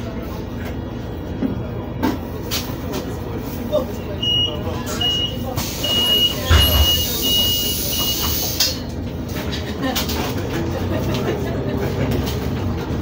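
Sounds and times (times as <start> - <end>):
bus engine rumble: 0.0 - 13.0.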